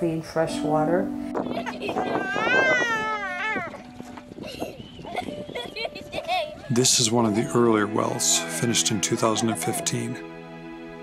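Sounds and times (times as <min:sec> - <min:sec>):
high voices chattering: 0:01.3 - 0:10.2
high-pitched wavering laugh: 0:01.5 - 0:03.8, 0:04.4 - 0:06.7.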